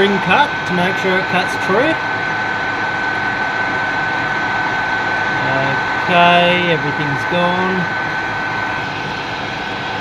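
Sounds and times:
high whine: 0.0 - 10.0
metal lathe running: 0.0 - 10.0.

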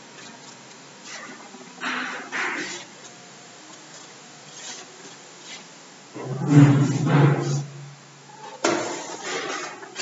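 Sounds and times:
duster rubbing on blackboard: 4.5 - 7.7.

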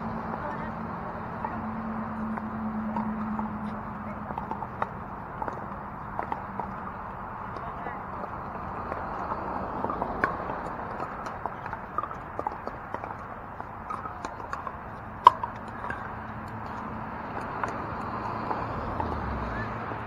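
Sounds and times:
background murmur: 0.0 - 20.0.

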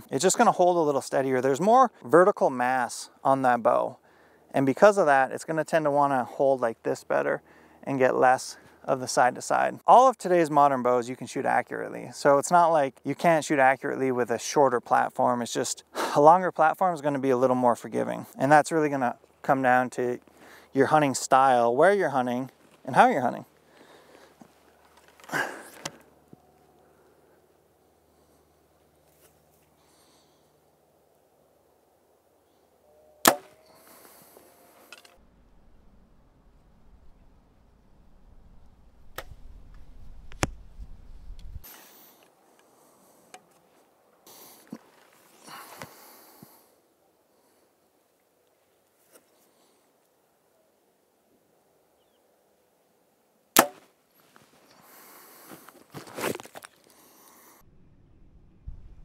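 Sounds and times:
bow string crack: 33.2 - 34.1, 38.4 - 42.3, 53.6 - 53.9.

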